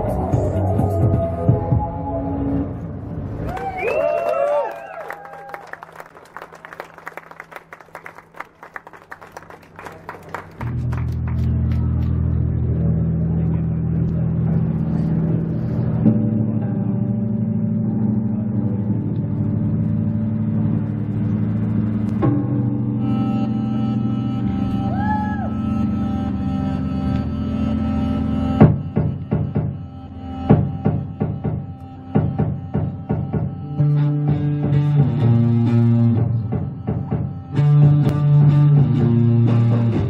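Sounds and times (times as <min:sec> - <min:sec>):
bass and synthesizer drone: 0:00.0 - 0:05.0, 0:09.0 - 0:40.0
people clapping: 0:03.4 - 0:12.4
low hum: 0:09.4 - 0:32.7.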